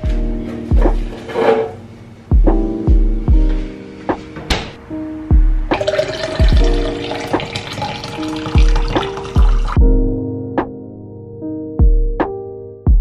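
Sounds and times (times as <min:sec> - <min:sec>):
background music with beat: 0:00.0 - 0:01.2, 0:02.3 - 0:07.6, 0:08.5 - 0:11.0, 0:11.7 - 0:13.0
liquid pouring into glass: 0:05.8 - 0:09.8.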